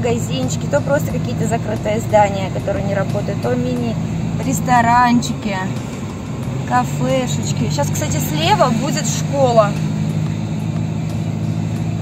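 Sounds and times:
car engine and tyre drone: 0.0 - 12.0.

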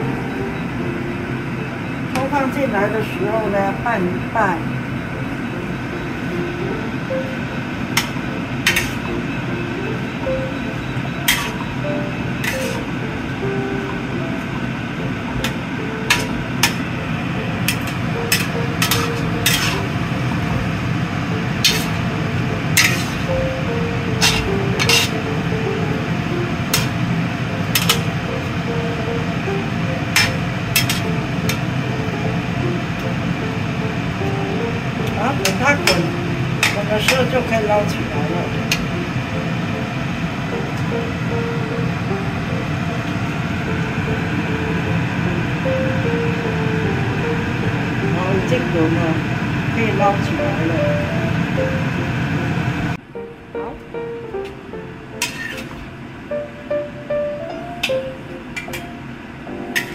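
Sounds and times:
light background music: 0.0 - 59.9
steady low hum: 0.0 - 59.9
metal spatula scraping wok: 7.9 - 9.1, 11.1 - 12.9, 15.4 - 16.9, 17.6 - 20.2, 21.6 - 23.4, 24.1 - 25.3, 26.6 - 28.2, 30.0 - 31.7, 35.4 - 37.6, 55.2 - 55.8.

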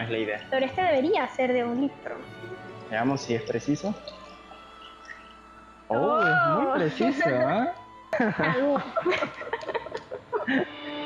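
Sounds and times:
person chuckling: 6.6 - 7.6, 8.2 - 10.8.

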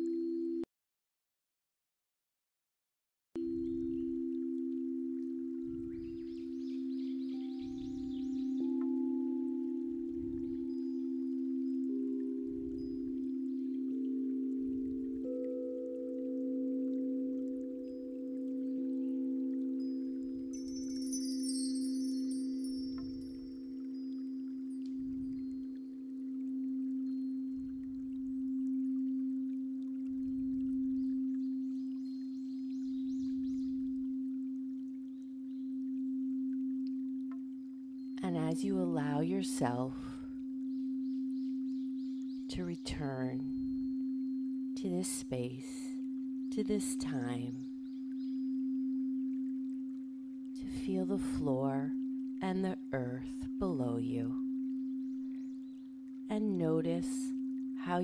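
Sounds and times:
crystal singing bowls humming: 0.0 - 0.7, 3.4 - 58.0
high chimes shimmer: 15.2 - 27.9.

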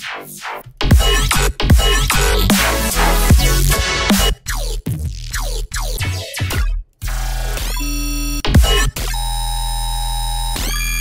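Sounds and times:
electronic dubstep music: 0.0 - 11.0.

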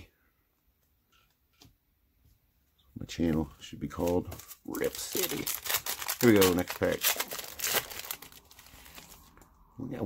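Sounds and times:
cards rustling: 3.9 - 9.5
foil wrapper crinkling: 4.0 - 9.4.

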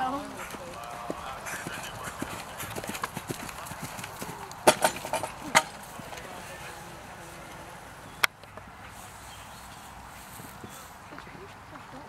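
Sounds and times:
horse hoofbeats on grass: 0.0 - 5.4.

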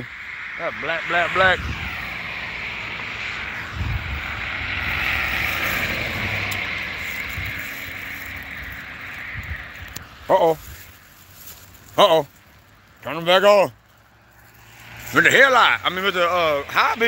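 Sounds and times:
cars driving past: 0.0 - 17.0.

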